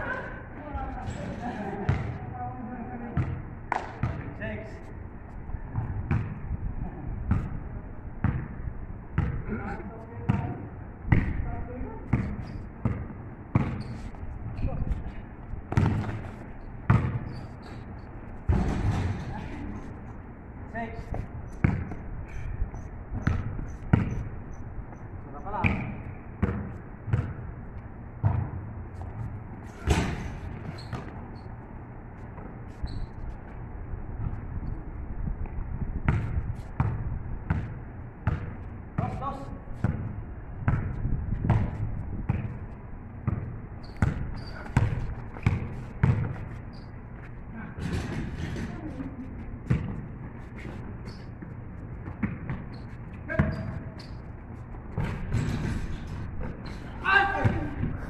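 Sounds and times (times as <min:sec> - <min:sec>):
basketball bouncing on pavement: 0:01.9 - 0:02.2, 0:03.2 - 0:04.3, 0:05.7 - 0:06.4, 0:07.3 - 0:07.6, 0:08.2 - 0:08.6, 0:09.2 - 0:09.4, 0:10.2 - 0:13.9, 0:15.7 - 0:17.4, 0:21.1 - 0:22.4, 0:23.2 - 0:24.3, 0:24.9 - 0:27.5, 0:28.2 - 0:31.3, 0:35.4 - 0:46.6, 0:49.6 - 0:54.0, 0:54.7 - 0:56.6.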